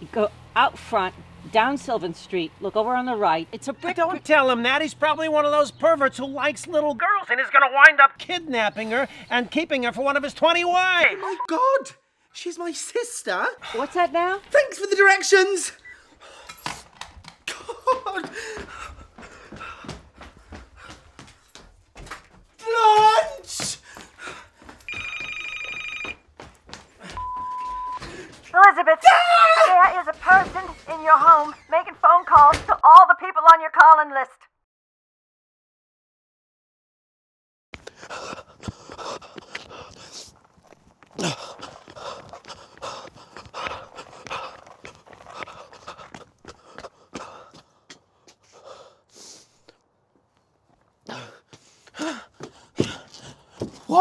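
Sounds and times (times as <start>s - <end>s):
high single-tone beep: 11.2s - 11.5s, 27.2s - 28.0s
man panting hard: 18.1s - 21.4s, 23.5s - 24.8s, 28.0s - 28.4s, 37.8s - 40.4s, 41.1s - 49.7s, 51.0s - 53.9s
voiced gasp: 18.2s - 20.0s, 51.1s - 53.7s
telephone ringing electronic trill: 24.9s - 26.2s.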